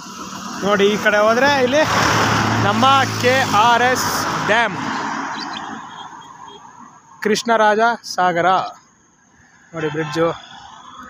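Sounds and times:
road and wind noise: 0:00.0 - 0:11.0
person talking: 0:00.6 - 0:04.9.

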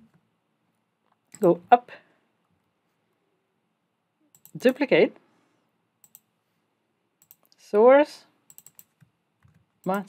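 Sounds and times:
person speaking: 0:01.4 - 0:02.1, 0:04.5 - 0:05.2
computer mouse clicks: 0:04.3 - 0:04.8, 0:06.0 - 0:06.3, 0:07.2 - 0:07.6, 0:08.5 - 0:10.0.

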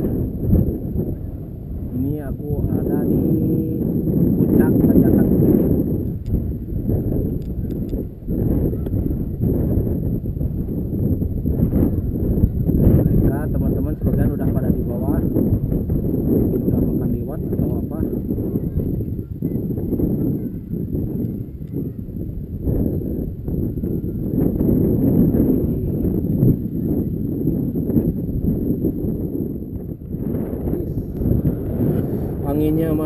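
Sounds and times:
wind buffeting microphone: 0:00.0 - 0:33.0
person speaking: 0:32.3 - 0:33.0.

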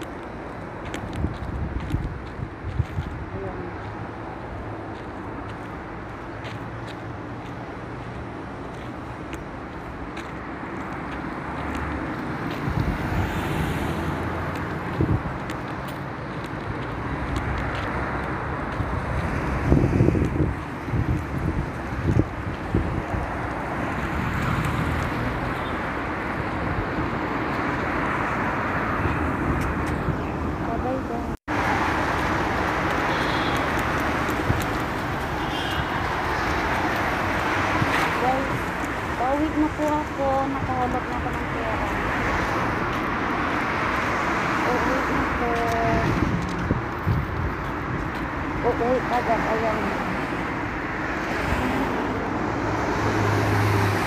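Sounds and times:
cars passing: 0:00.0 - 0:54.0.

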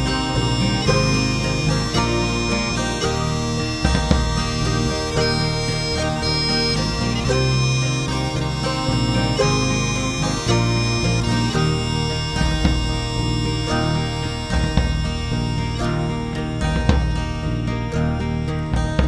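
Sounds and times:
bagpipe drone: 0:00.0 - 0:19.0
bagpipes playing melody: 0:00.0 - 0:19.0
band accompaniment: 0:00.0 - 0:19.0.

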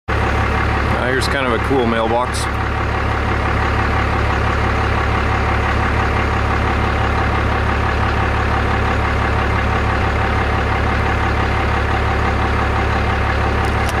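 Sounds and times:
vehicle engine idling: 0:00.1 - 0:14.0.

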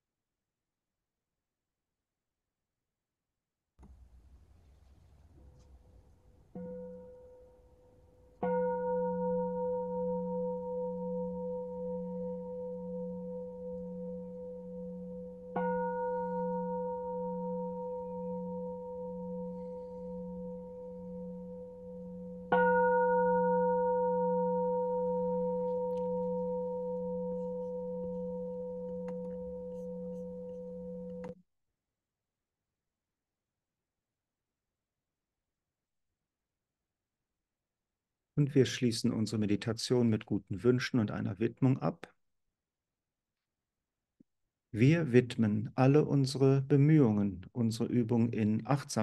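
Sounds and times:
singing bowl ringing: 0:06.5 - 0:31.4.

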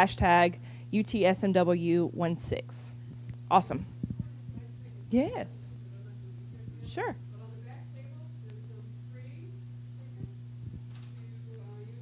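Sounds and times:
electrical mains hum: 0:00.0 - 0:12.0
soft low microphone thumps: 0:03.0 - 0:04.9, 0:10.0 - 0:11.2.

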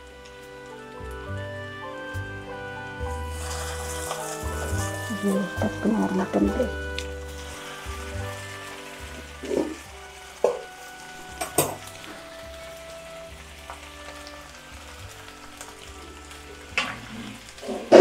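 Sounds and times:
chicken sizzling in a pan: 0:00.0 - 0:18.0
metal tongs clinking on pan: 0:11.4 - 0:11.8.

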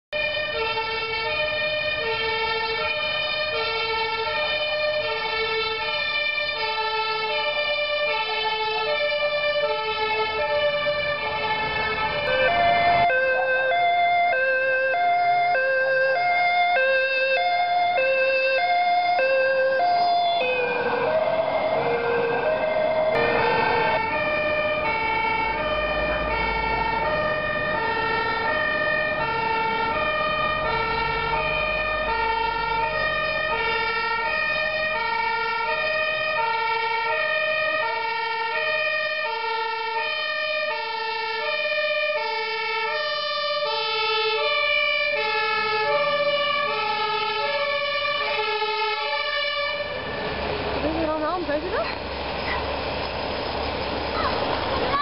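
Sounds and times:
two-tone fire engine siren: 0:00.1 - 0:55.0.

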